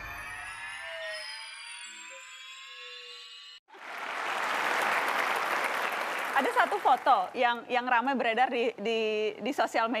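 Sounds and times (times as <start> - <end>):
rising electronic tones sting: 0.0 - 3.6
studio audience applause: 3.7 - 7.4.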